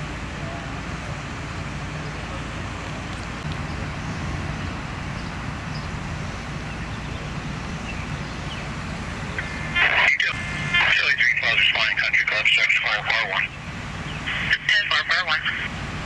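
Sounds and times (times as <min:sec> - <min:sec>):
fire truck engines humming: 0:00.0 - 0:16.0
two-way radio tone: 0:09.3 - 0:13.5, 0:14.2 - 0:15.7
tinny radio voice: 0:09.4 - 0:13.5, 0:14.3 - 0:15.7.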